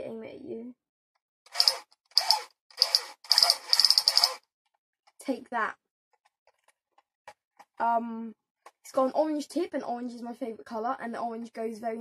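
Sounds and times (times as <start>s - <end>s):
toy gun trigger ratcheting: 1.5s - 4.4s.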